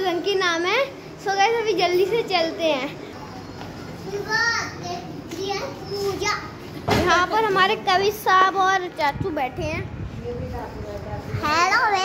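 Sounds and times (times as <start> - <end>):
children's voices: 0.0 - 9.9, 11.3 - 12.0.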